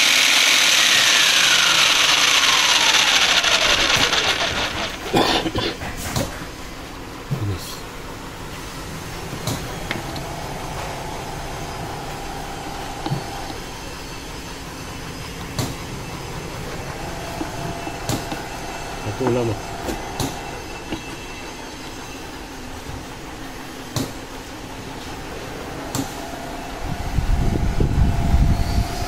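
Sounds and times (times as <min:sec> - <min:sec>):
steady mechanical hum: 0:00.0 - 0:29.0.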